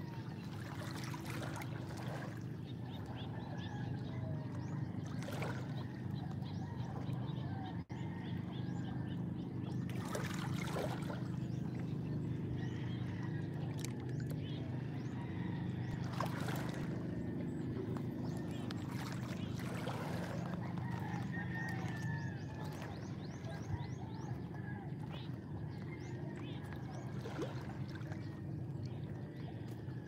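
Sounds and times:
little splashes and trickles: 0.0 - 7.2, 9.6 - 14.9, 15.8 - 30.0
steady low hum: 0.0 - 30.0.

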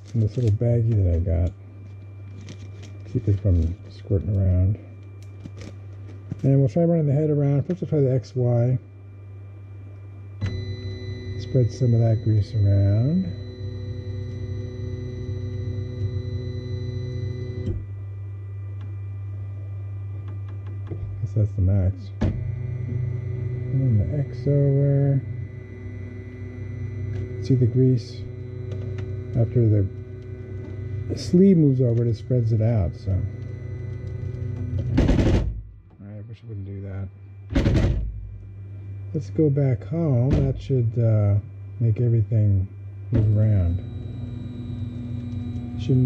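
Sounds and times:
cooling fans humming: 0.0 - 46.0
motor stopping click: 10.4 - 17.8, 22.4 - 35.1, 43.2 - 46.0
stepper motors whining: 10.4 - 18.0, 20.2 - 35.8, 39.1 - 46.0.

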